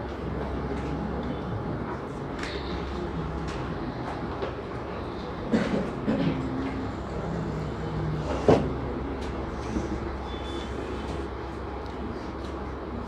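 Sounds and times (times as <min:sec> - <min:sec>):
room hum: 0:00.0 - 0:13.0.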